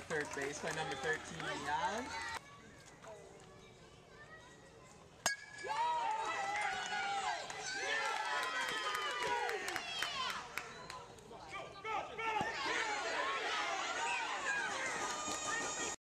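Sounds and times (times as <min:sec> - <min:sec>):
bat striking softball: 0:05.2 - 0:05.8
spectators shouting and cheering: 0:05.5 - 0:16.0.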